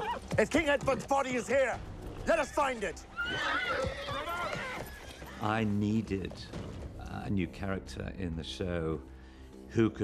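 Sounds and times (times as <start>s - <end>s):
horse hoofbeats: 0.0s - 2.6s, 3.2s - 7.3s
horse whinnying: 3.0s - 5.5s.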